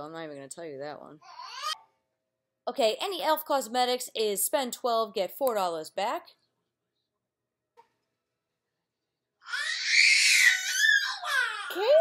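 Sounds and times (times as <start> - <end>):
child shrieking: 9.4 - 12.0.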